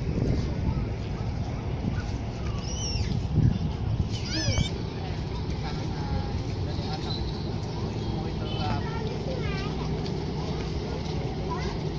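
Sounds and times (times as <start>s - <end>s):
traffic rumble: 0.0s - 11.9s
wind: 0.0s - 11.9s.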